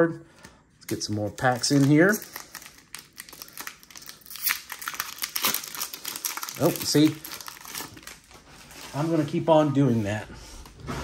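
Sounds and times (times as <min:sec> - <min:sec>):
foil wrapper crinkling: 0:00.9 - 0:09.1.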